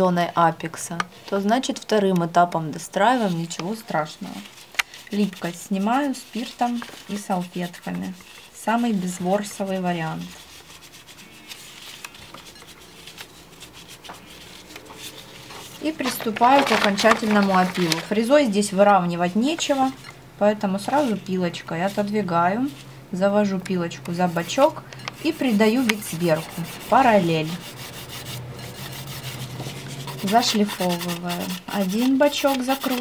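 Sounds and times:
wipe rubbing over a nail: 3.1 - 17.9, 24.2 - 33.0
nail file rasping: 25.2 - 33.0.

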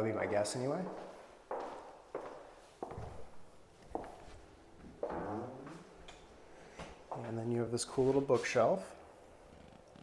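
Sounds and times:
slow footsteps on hard floor: 0.2 - 7.4.

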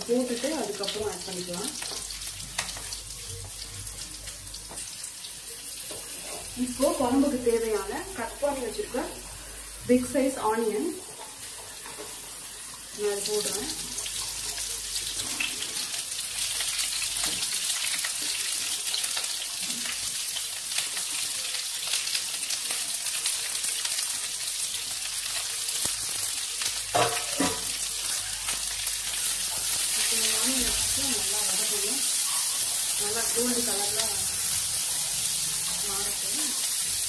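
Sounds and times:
onion sizzling in hot oil: 0.0 - 37.0.

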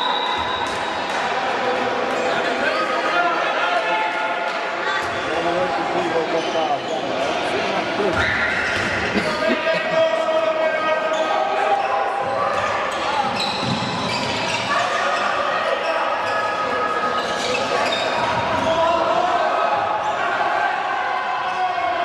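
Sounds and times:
echoing voices: 0.9 - 13.4.

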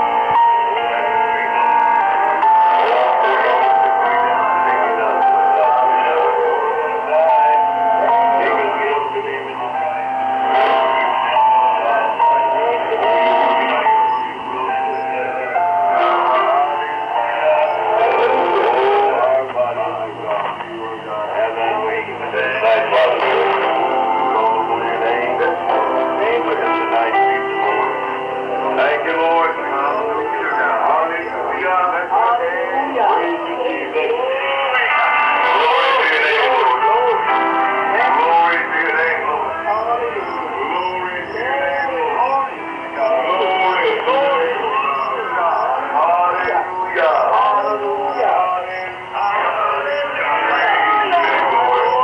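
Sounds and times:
music on am radio: 0.0 - 52.0
person singing on radio: 0.0 - 52.0.

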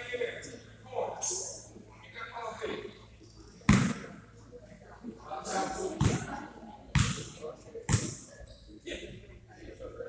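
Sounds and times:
spectators murmuring: 0.0 - 10.0.

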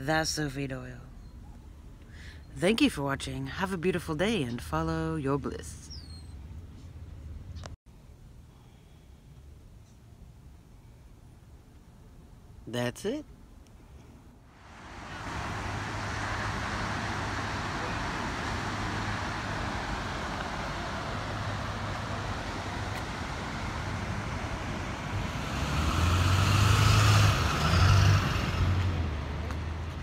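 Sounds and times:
rushing outdoor noise: 13.6 - 30.0.

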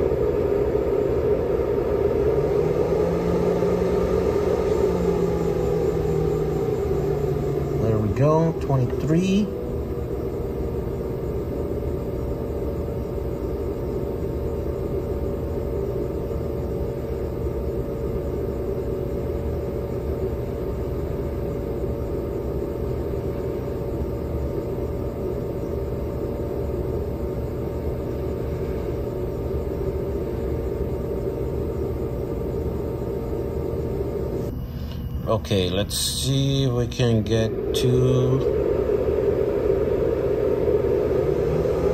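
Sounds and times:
cooling fan humming: 0.0 - 41.9.

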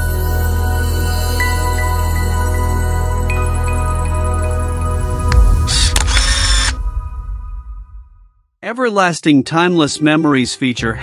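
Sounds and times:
sustained music tones: 1.6 - 8.4
low rumble: 4.5 - 8.4
mechanical clicking hissing burst: 5.7 - 6.8.

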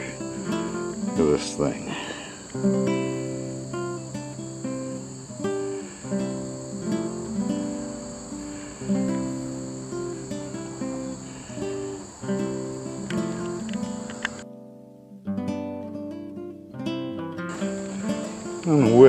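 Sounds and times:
acoustic guitar picking: 0.0 - 19.0.

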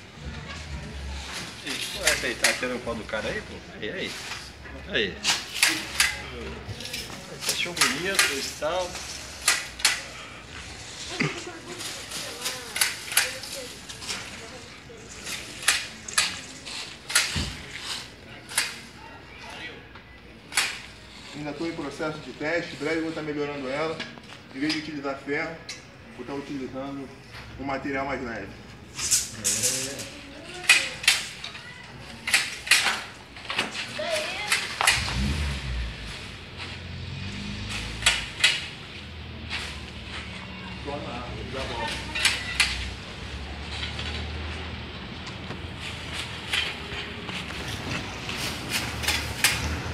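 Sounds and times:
pruner blades clacking: 1.7 - 2.8, 6.8 - 10.1, 11.8 - 14.4, 15.2 - 18.9, 48.3 - 49.9.

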